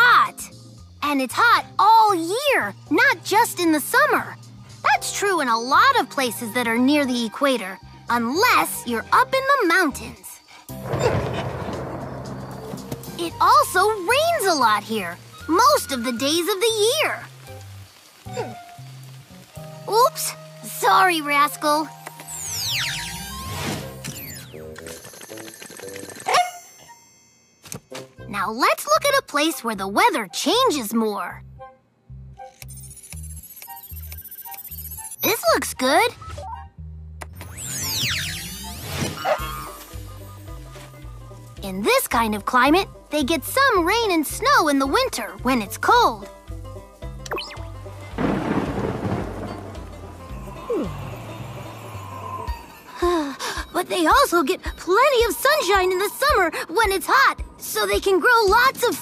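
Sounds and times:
rain-like hiss: 0:09.6 - 0:24.3, 0:39.4 - 0:53.8
thunder rumble: 0:10.7 - 0:16.2, 0:47.8 - 0:52.2
dog yelping: 0:39.2 - 0:39.8
background music with bass line: 0:45.2 - 0:52.6.

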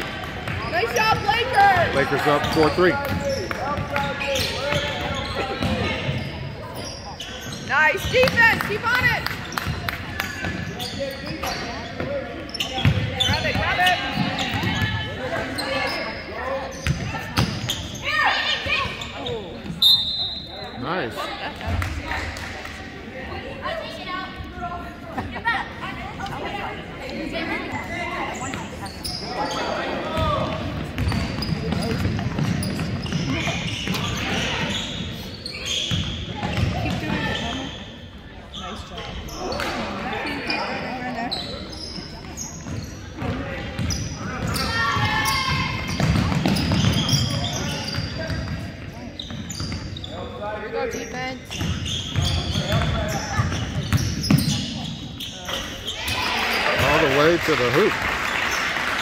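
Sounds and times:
voices echoing in a gym: 0:00.0 - 0:59.0.

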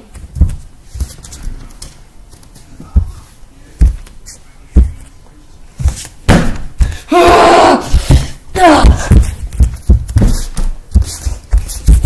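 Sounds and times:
dull thumps: 0:03.8 - 0:04.2, 0:05.8 - 0:12.0.

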